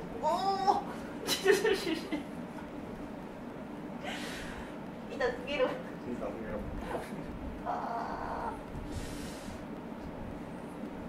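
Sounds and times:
woman groaning in pain: 7.6s - 8.6s.

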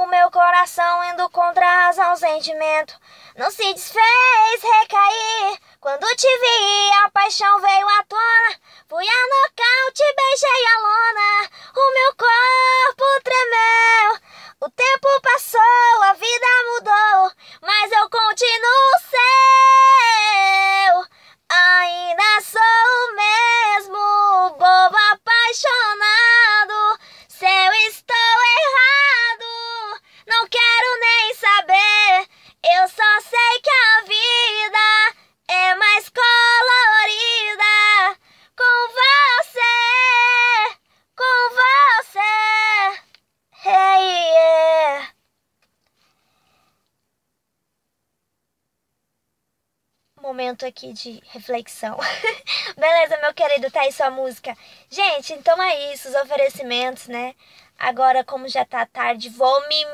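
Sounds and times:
woman singing unaccompanied: 0.0s - 45.2s, 50.2s - 59.9s.

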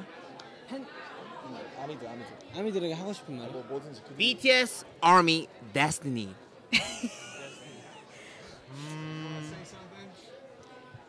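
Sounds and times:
faint background noise: 0.0s - 11.0s
man humming thoughtfully: 8.7s - 9.7s.

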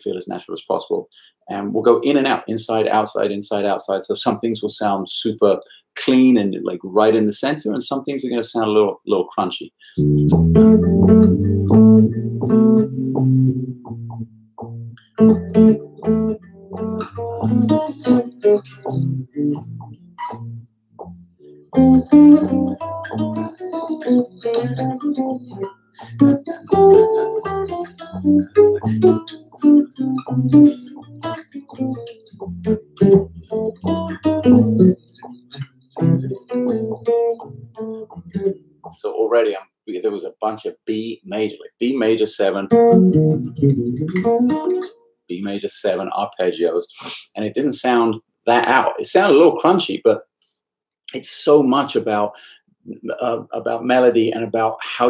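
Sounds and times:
electric bass plucked notes: 10.0s - 39.1s, 42.7s - 44.9s.

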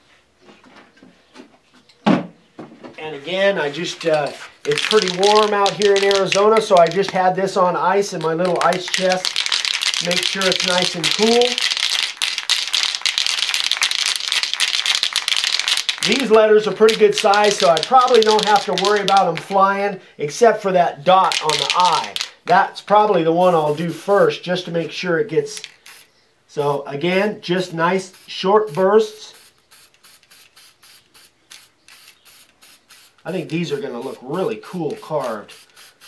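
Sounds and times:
spray can rattling while shaken: 3.9s - 19.6s, 21.2s - 22.5s, 25.5s - 26.8s, 28.0s - 28.4s, 29.3s - 36.0s.

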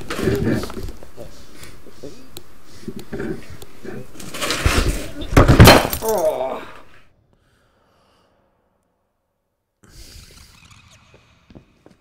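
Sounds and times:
glass bottle smashing: 5.4s - 6.2s
man groaning: 5.9s - 6.9s.

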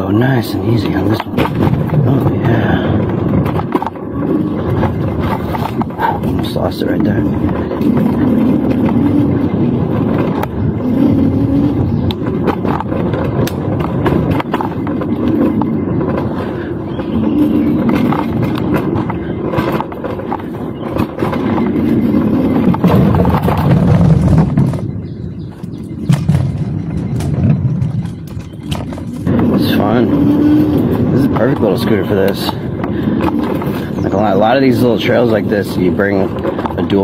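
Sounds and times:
knocks and rattles from bumps: 0.0s - 37.0s
scooter rolling on dirt trail: 0.0s - 37.0s.

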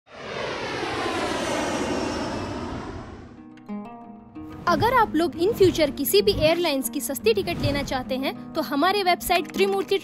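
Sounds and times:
airliner flying over: 0.1s - 3.6s.

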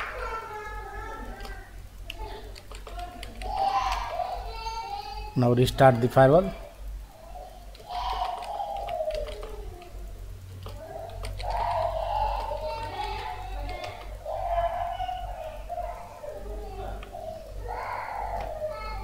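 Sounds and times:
keyboard keys clicking: 1.4s - 4.1s, 7.7s - 10.0s, 10.6s - 14.2s.

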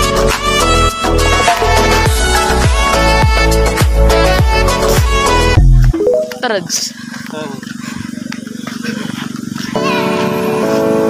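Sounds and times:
background music: 0.0s - 6.6s.

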